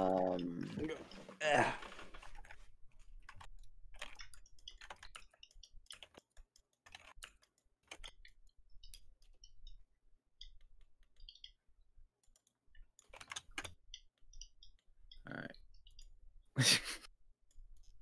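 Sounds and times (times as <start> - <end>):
mouse and keyboard clicking: 3.2 - 9.8, 12.2 - 15.2.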